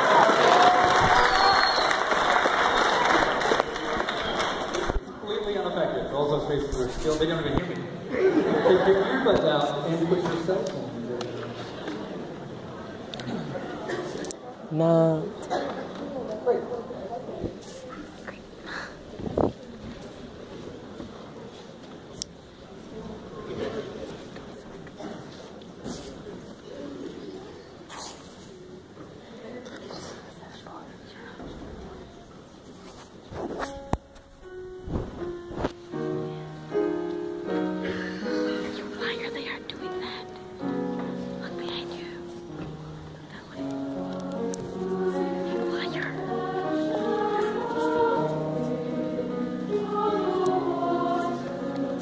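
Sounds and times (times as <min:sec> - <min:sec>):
murmur of audience voices: 0:00.0 - 0:52.0
choir singing sustained chords: 0:43.9 - 0:52.0.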